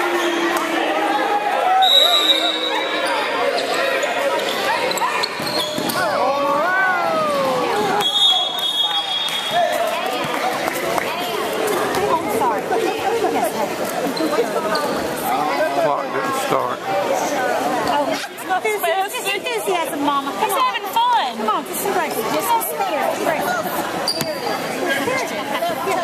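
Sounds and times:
spectators talking and shouting: 0.0s - 26.0s.

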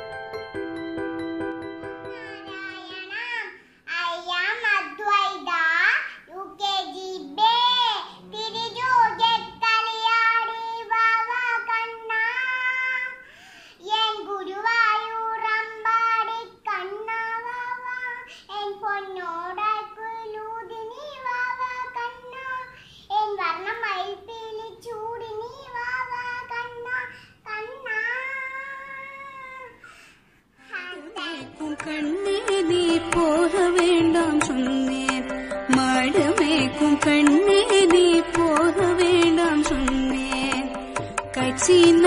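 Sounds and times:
girl singing: 2.1s - 42.0s.

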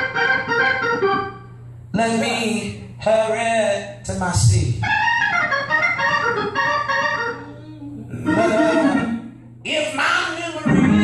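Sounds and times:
church organ chords: 0.0s - 2.0s, 4.4s - 7.4s, 10.6s - 11.0s.

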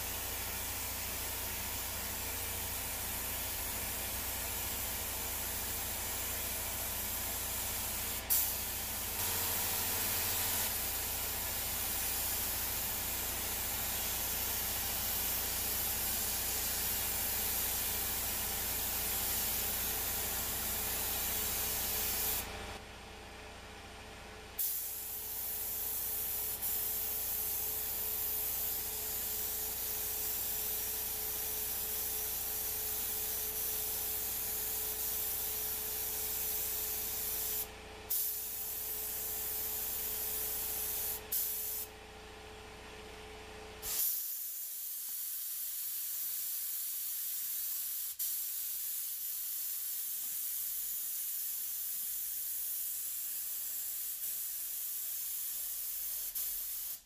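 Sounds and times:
spray gun hissing: 0.0s - 22.5s, 24.6s - 41.9s, 43.8s - 57.0s.

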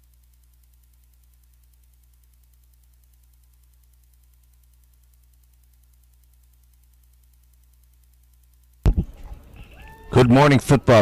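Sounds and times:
microphone pop: 8.8s - 9.2s.

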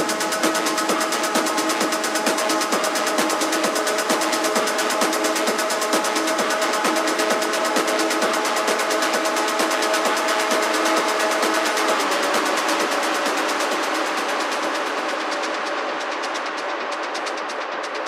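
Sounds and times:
fast percussion ticks: 0.0s - 18.0s.

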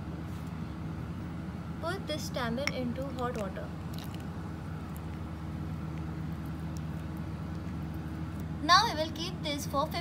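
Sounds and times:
steady low hum: 0.0s - 10.0s
woman's voice: 1.8s - 3.8s.

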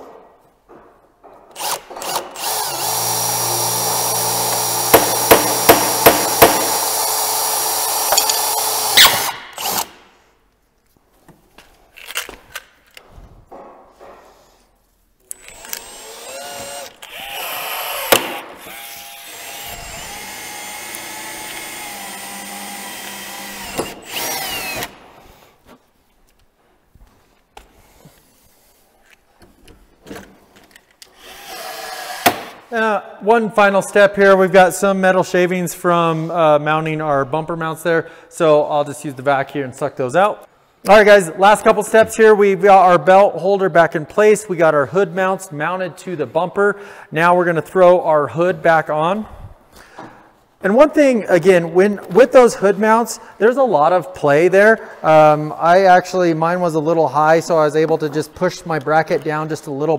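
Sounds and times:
cordless drill boring: 1.6s - 9.9s, 15.3s - 25.0s, 31.1s - 32.4s
sharp knocks: 4.9s - 6.8s.

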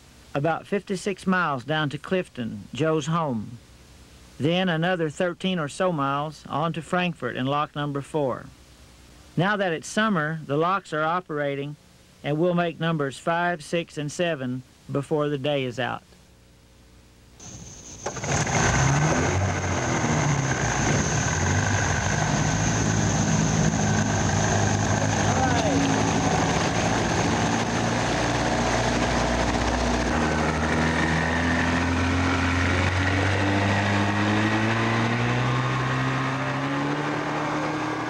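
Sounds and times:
outboard motor running: 17.4s - 33.1s.

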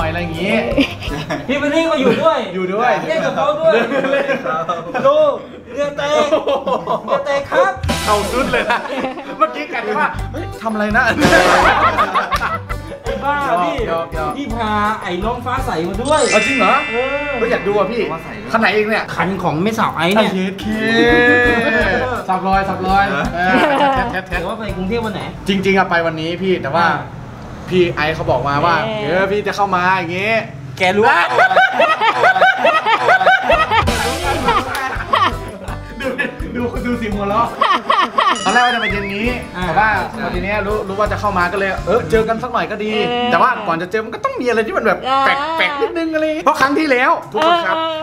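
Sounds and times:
background music: 0.0s - 2.3s, 7.8s - 26.1s, 31.4s - 43.9s
men laughing: 0.6s - 2.3s, 3.0s - 10.2s, 11.1s - 13.3s, 20.7s - 22.2s, 23.4s - 24.3s, 31.0s - 39.4s
deep bass beat: 7.8s - 8.6s, 38.8s - 39.9s
background music with low beat: 7.8s - 8.9s, 33.6s - 37.8s, 38.5s - 42.3s.

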